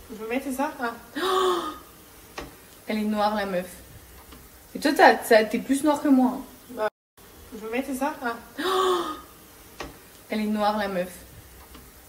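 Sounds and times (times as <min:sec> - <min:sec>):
breathy vocal sound from woman: 0:01.2 - 0:01.9, 0:08.6 - 0:09.3.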